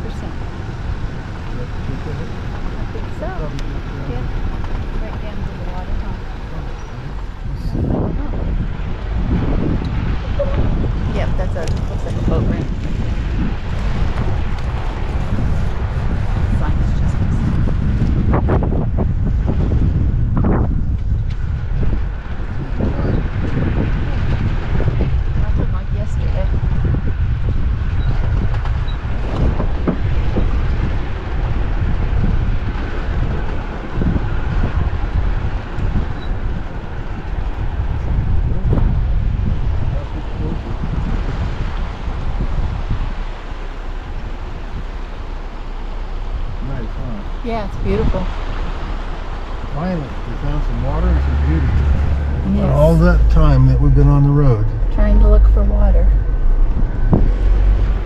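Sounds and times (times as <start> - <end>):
vehicle engine and tyres rumbling: 0.0 - 58.0
wind buffeting microphone: 0.0 - 58.0.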